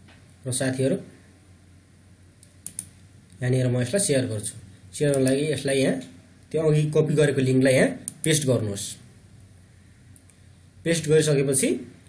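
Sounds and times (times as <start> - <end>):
low steady hum: 0.0 - 12.0
computer mouse clicks: 2.4 - 3.4, 10.1 - 10.4.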